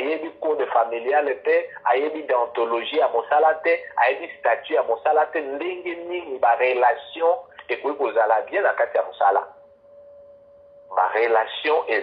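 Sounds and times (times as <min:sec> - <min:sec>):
person talking: 0:00.0 - 0:09.4
faint steady tone: 0:00.0 - 0:12.0.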